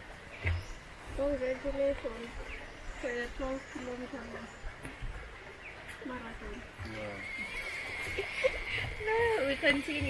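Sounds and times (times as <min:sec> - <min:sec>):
woman laughing: 0:08.0 - 0:09.6.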